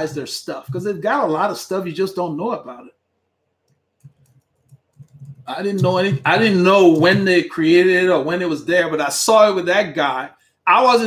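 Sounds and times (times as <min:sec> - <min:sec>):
computer clicks: 0:03.6 - 0:06.2.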